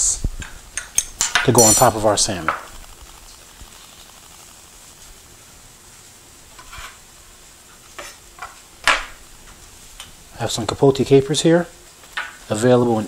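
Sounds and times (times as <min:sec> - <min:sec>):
vegetables sizzling in a pan: 0:01.8 - 0:10.3.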